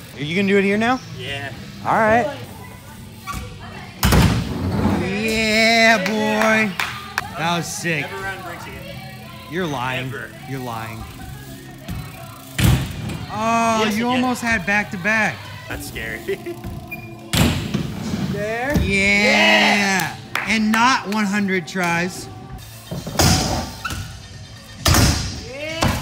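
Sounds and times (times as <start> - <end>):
background music: 4.4 - 26.0.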